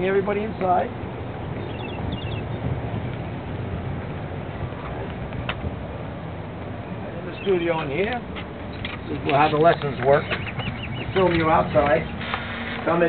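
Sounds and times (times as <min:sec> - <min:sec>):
outdoor background noise: 0:00.0 - 0:13.0.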